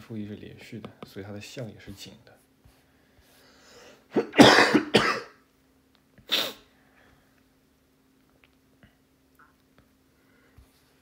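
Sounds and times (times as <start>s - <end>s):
person coughing: 4.1s - 5.4s.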